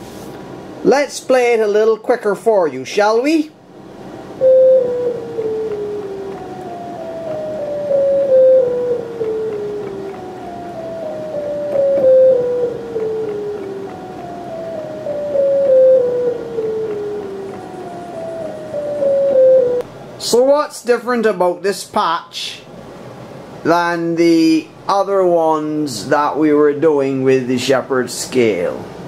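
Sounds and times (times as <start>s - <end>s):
descending synthesizer scale: 4.4s - 19.8s.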